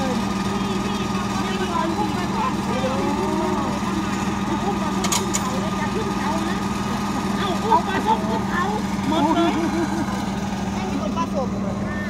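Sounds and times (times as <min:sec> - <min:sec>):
truck engine humming: 0:00.0 - 0:12.0.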